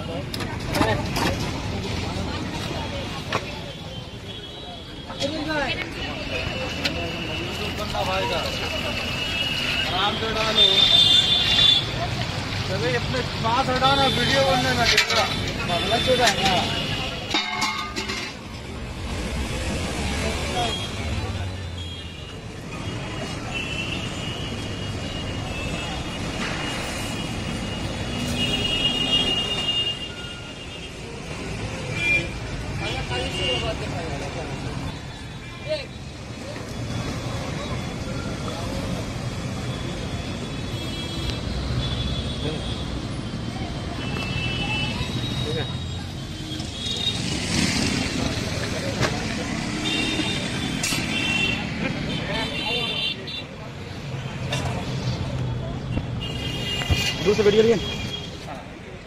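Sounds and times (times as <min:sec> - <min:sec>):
road traffic rumble: 0:00.0 - 0:59.0
vehicle horns: 0:21.7 - 0:31.0, 0:49.5 - 0:53.6, 0:55.9 - 0:58.5.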